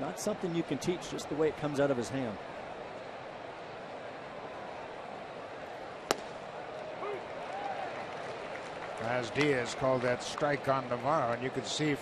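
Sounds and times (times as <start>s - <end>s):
ball popping into catcher's mitt: 6.0s - 6.5s.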